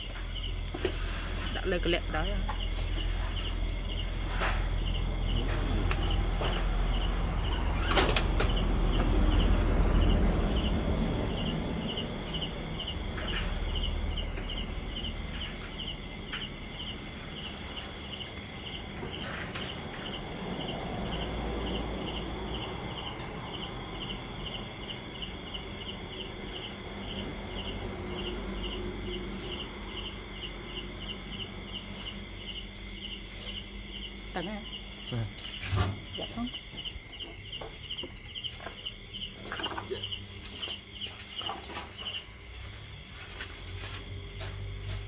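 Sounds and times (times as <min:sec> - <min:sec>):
insects chirping: 0:00.0 - 0:45.0.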